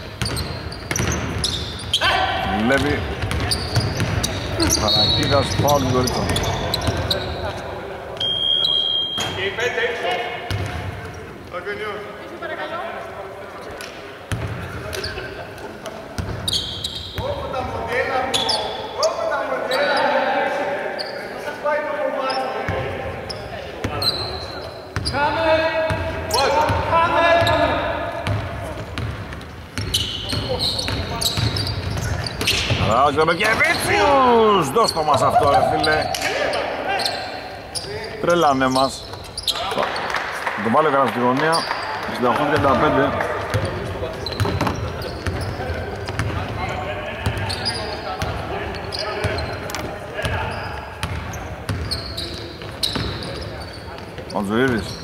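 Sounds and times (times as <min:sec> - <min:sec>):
sneakers squeaking: 0:00.0 - 0:11.6, 0:13.6 - 0:40.3, 0:41.4 - 0:55.0
basketball bouncing: 0:00.2 - 0:01.6, 0:02.7 - 0:04.8, 0:10.5 - 0:11.0, 0:28.2 - 0:32.8, 0:43.4 - 0:46.6, 0:51.0 - 0:51.9
players calling out: 0:00.2 - 0:11.4, 0:14.7 - 0:55.0
whistle: 0:08.2 - 0:09.4.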